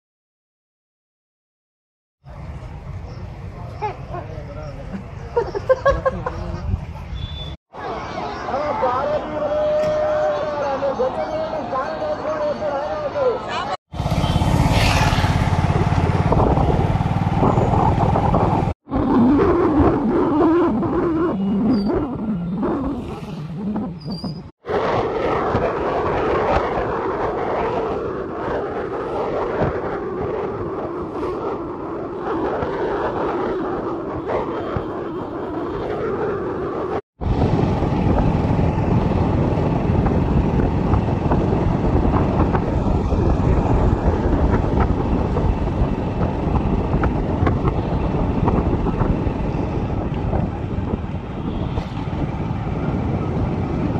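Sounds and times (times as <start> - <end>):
wind rumbling over microphone: 2.2 - 7.6, 13.9 - 53.9.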